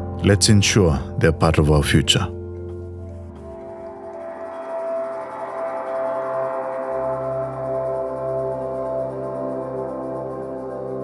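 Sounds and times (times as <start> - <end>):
ambient bell-like music: 0.0 - 11.0.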